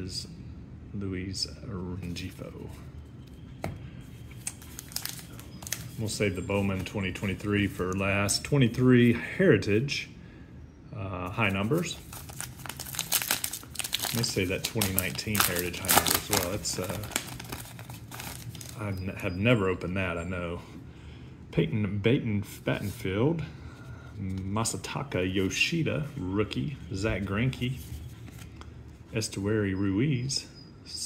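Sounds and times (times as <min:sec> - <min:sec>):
trading cards clicking and rustling: 0:04.4 - 0:08.0, 0:12.0 - 0:18.8.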